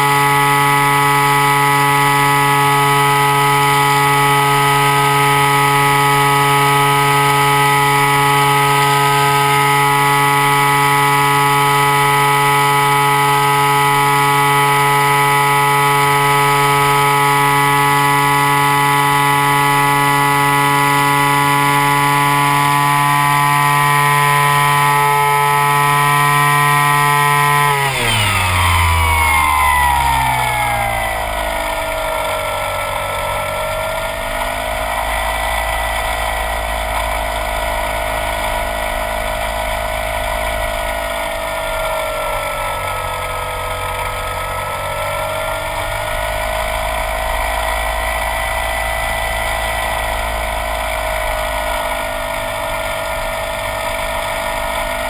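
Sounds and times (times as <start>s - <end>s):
model airplane engine and propeller: 0.0s - 55.0s.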